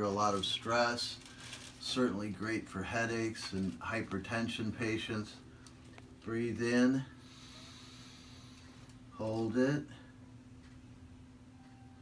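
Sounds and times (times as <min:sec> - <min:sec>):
low room hum: 0:00.0 - 0:12.0
man breathing in through nose: 0:07.2 - 0:08.9.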